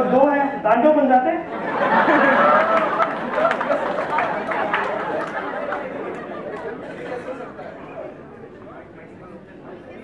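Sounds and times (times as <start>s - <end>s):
overlapping chatter of people: 1.4s - 10.0s.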